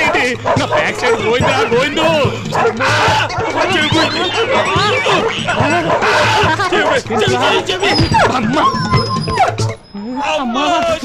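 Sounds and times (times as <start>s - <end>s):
dogs barking: 0.0s - 10.8s
film background music: 0.0s - 11.0s.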